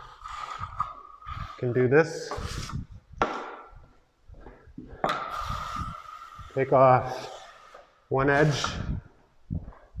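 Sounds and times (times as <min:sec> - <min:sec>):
trowel scraping joint compound: 0:00.0 - 0:02.8, 0:05.0 - 0:09.0.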